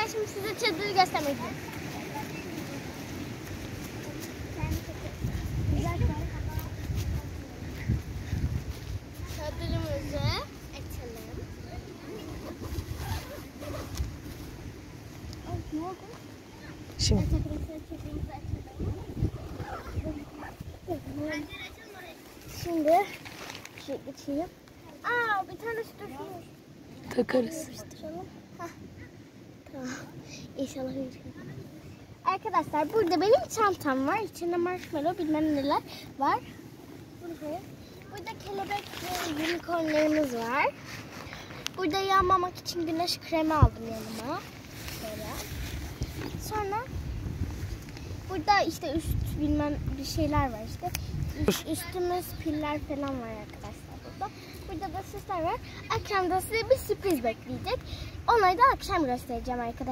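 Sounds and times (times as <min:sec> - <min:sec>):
child's voice: 0:00.0 - 0:03.1, 0:03.9 - 0:08.0, 0:09.2 - 0:13.4, 0:15.4 - 0:23.2, 0:23.8 - 0:40.8, 0:41.7 - 0:47.1, 0:48.2 - 0:59.9
wind buffeting microphone: 0:00.0 - 0:23.2, 0:30.6 - 0:59.9
low steady background hiss: 0:08.7 - 0:59.9.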